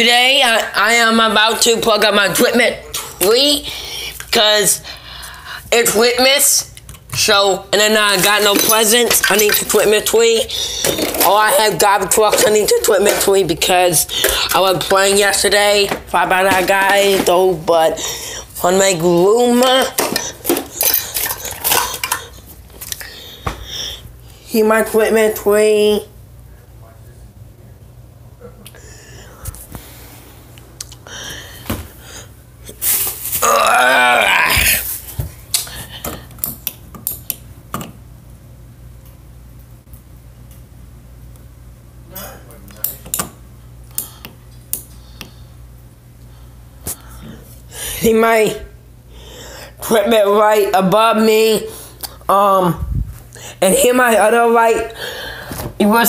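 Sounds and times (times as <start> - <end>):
low steady hum: 0.0 - 56.0.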